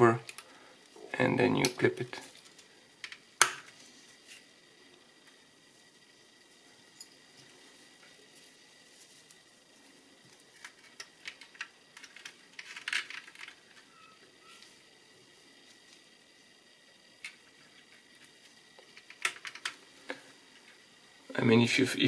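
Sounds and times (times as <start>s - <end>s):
small clicks and taps of plastic parts: 17.2s - 20.8s.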